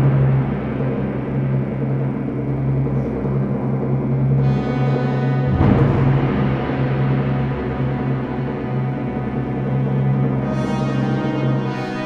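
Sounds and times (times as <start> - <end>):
timpani roll: 0.0 - 11.6
wind orchestra sustained low chord: 0.0 - 12.0.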